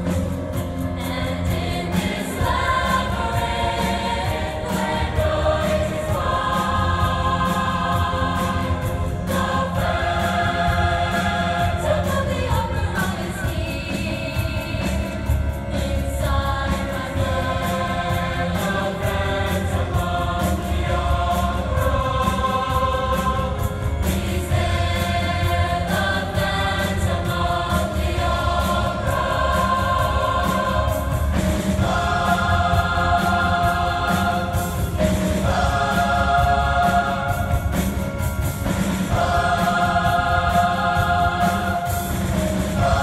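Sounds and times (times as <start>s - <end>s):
choir singing sustained chords: 0.0s - 43.0s.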